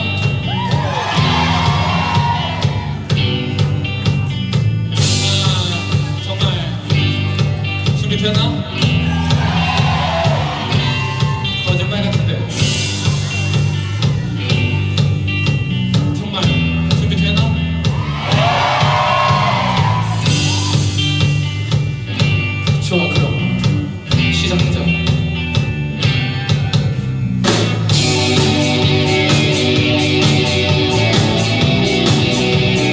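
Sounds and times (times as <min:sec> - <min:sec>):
drum kit: 0:00.0 - 0:32.9
electric bass: 0:00.0 - 0:32.9
electric guitar: 0:00.0 - 0:32.9.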